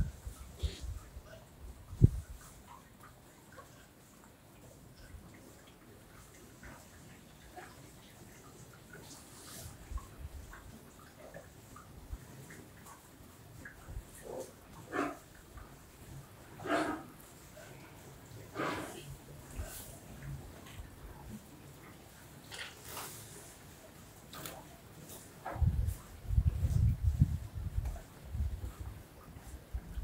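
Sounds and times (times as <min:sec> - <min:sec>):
cattle snorting: 0:16.6 - 0:17.7, 0:18.4 - 0:20.0.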